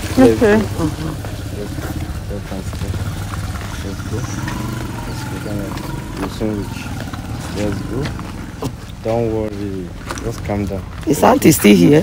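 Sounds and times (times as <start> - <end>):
engine running with low hum: 0.0 - 11.0.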